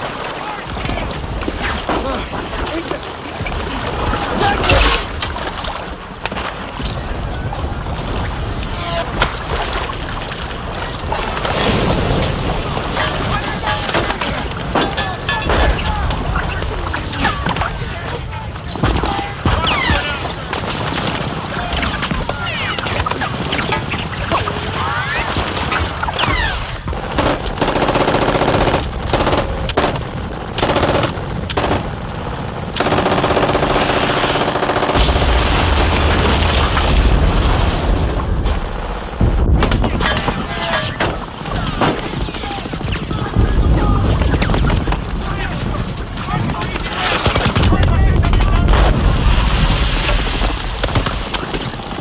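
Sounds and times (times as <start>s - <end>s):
surf and churning sea water: 0.0s - 52.0s
machine-gun fire: 27.0s - 38.1s.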